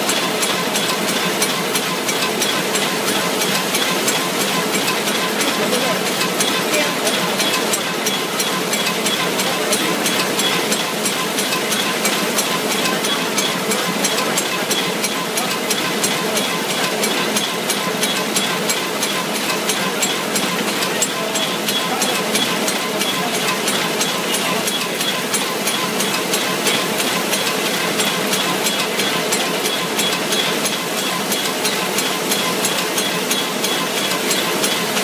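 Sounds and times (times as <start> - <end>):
machine mechanical clatter: 0.0 - 35.0.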